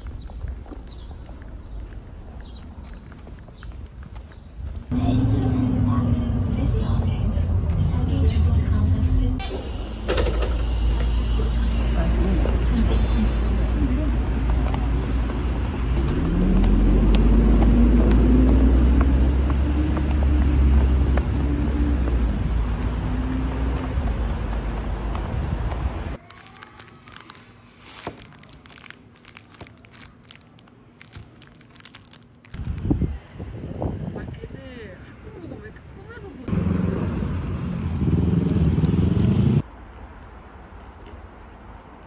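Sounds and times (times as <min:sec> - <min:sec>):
low traffic rumble: 0:00.0 - 0:42.0
vehicle engine pulling away: 0:14.7 - 0:25.1, 0:36.5 - 0:39.6.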